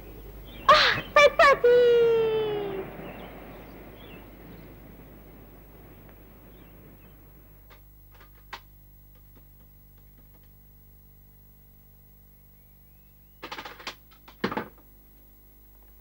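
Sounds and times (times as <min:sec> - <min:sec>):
voice holding a call: 0:00.2 - 0:03.2.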